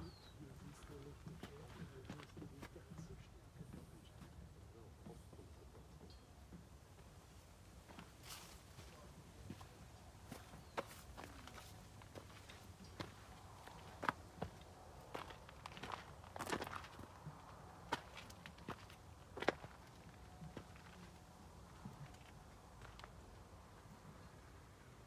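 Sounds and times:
faint footsteps: 0.0s - 5.6s, 6.4s - 24.4s.

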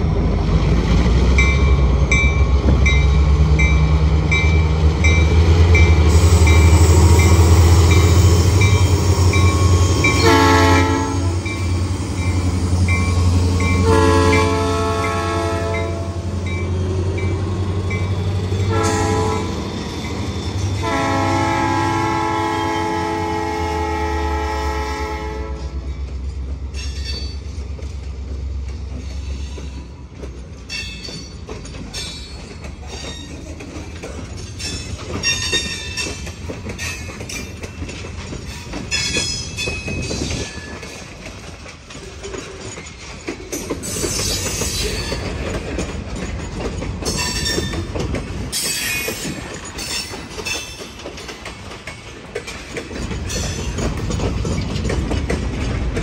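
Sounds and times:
diesel locomotive engines rumbling: 0.0s - 56.0s
train wheel squeal: 1.4s - 21.3s, 28.9s - 30.0s, 30.7s - 55.3s
train horn blast: 10.1s - 11.5s, 13.8s - 16.3s, 18.6s - 19.7s, 20.8s - 25.9s
freight cars knocking: 25.8s - 56.0s.

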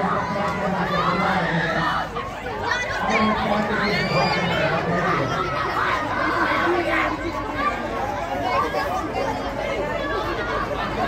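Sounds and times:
crowd voices talking and calling out: 0.0s - 11.0s.

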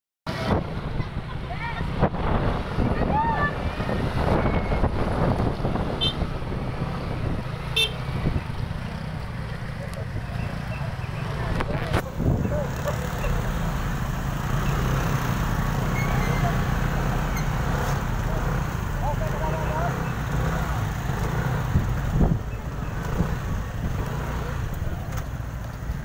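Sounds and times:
idling motorcycle and car engines: 0.3s - 26.0s
short horn beeps: 7.8s - 8.0s
voices in background: 9.3s - 14.0s, 15.8s - 21.0s.

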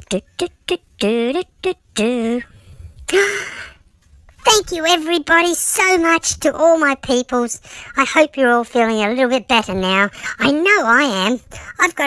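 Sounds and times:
person sighing: 2.0s - 3.8s
person laughing: 3.1s - 3.6s.

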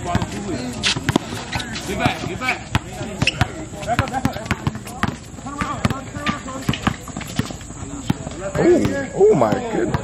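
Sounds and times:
basketball bouncing on hard court: 0.0s - 1.3s, 1.9s - 10.0s
players calling out: 0.0s - 10.0s.

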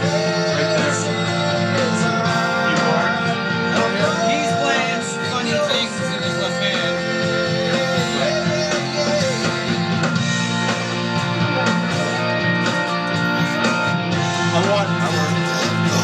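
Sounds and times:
electric guitar: 0.0s - 16.0s
rock band playing: 0.0s - 16.0s.

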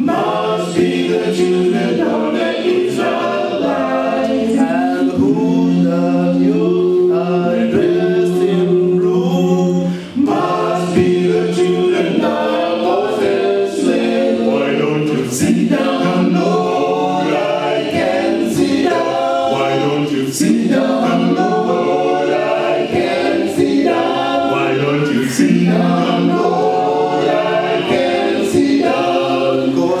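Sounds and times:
male a cappella group singing: 0.0s - 30.0s.

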